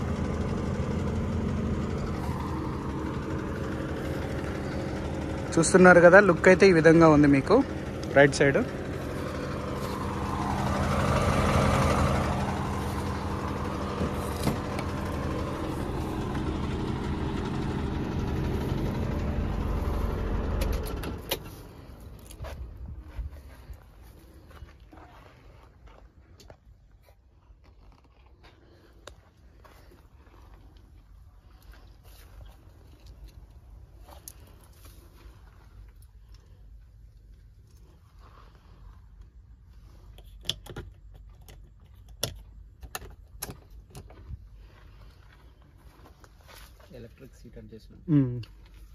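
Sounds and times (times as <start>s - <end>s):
car engine idling: 0.0s - 25.1s.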